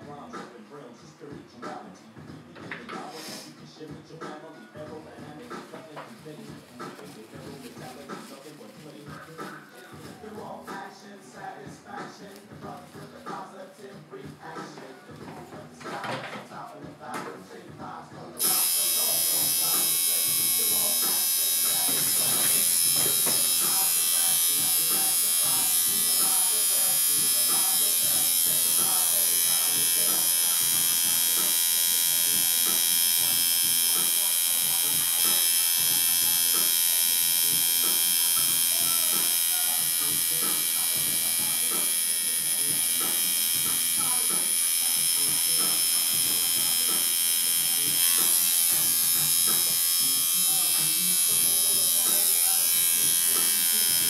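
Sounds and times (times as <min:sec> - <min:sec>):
tattoo machine buzzing: 0:18.4 - 0:54.0.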